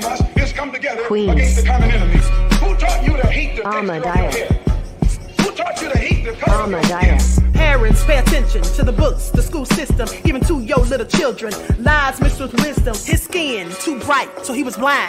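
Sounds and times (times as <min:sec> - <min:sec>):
rapping over a beat: 0:00.0 - 0:15.0
deep bass note: 0:01.3 - 0:03.6, 0:06.5 - 0:10.1.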